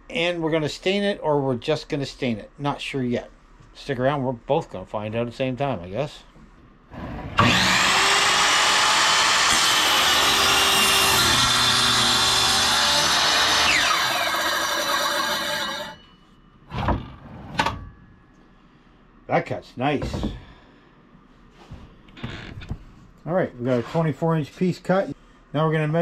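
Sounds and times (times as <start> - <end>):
mitre saw cutting wood: 7.0 - 16.0.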